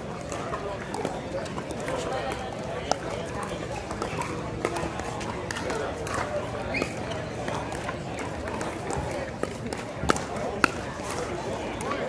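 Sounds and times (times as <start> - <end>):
paddles hitting balls: 0.3 - 12.0.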